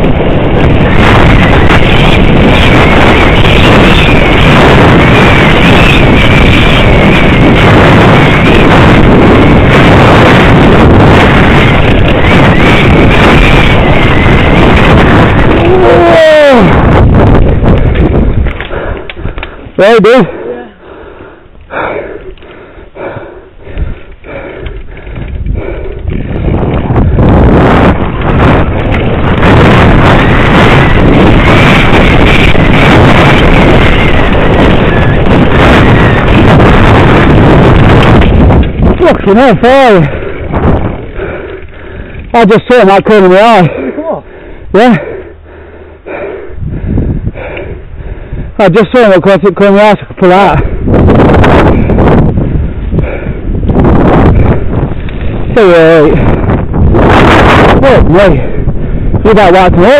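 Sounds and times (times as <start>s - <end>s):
bike knocking and rattling: 0.0s - 19.8s, 23.7s - 43.2s, 50.1s - 57.6s
wind buffeting microphone: 0.0s - 59.9s.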